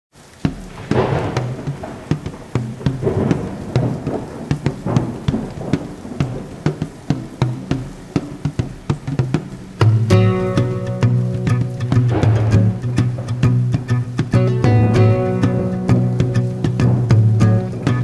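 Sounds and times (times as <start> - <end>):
heavy rain: 0.1 - 18.0
raindrops splashing: 0.1 - 18.0
thunder rumbling: 0.2 - 18.0.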